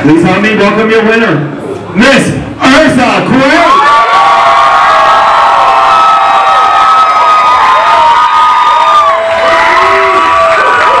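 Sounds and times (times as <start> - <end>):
crowd cheering: 3.4 - 11.0
high-pitched screams: 3.5 - 11.0.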